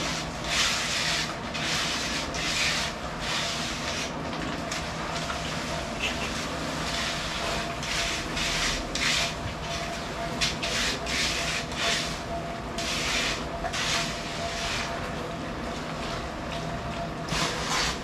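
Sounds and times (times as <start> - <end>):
trowel scraping wet concrete: 0.0 - 4.1, 10.5 - 12.2, 12.8 - 14.9, 17.4 - 18.0.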